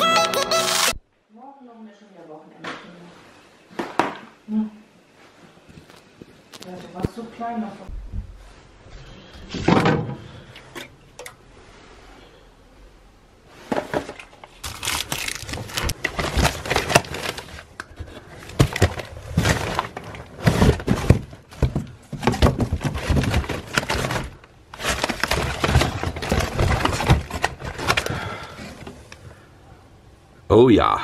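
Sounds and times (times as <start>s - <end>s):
foil pouches and cans rustling: 13.7s - 28.9s.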